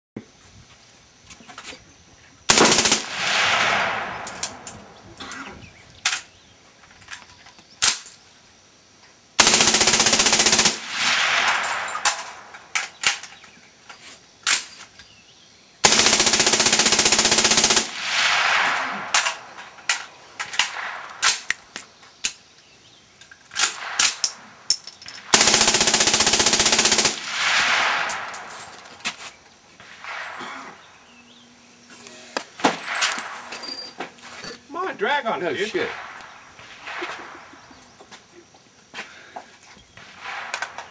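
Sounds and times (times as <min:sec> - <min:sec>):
automatic rifle bursts: 0:02.5 - 0:03.3, 0:09.4 - 0:11.0, 0:15.8 - 0:18.0, 0:25.3 - 0:27.3
gunshot echo: 0:02.5 - 0:05.4, 0:10.8 - 0:13.1, 0:17.9 - 0:21.7, 0:23.6 - 0:24.6, 0:27.2 - 0:29.1, 0:29.8 - 0:31.5, 0:32.4 - 0:33.9, 0:35.6 - 0:38.0, 0:40.0 - 0:40.9.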